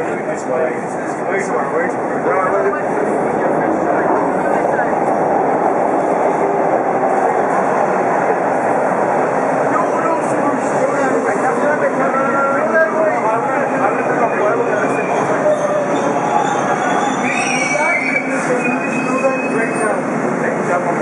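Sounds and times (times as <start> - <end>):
subway train rolling past: 0.0 - 21.0.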